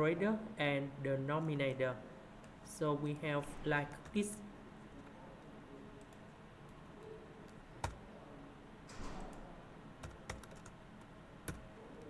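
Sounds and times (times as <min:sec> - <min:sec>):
computer keys clicking: 0:06.0 - 0:08.0, 0:08.9 - 0:12.0.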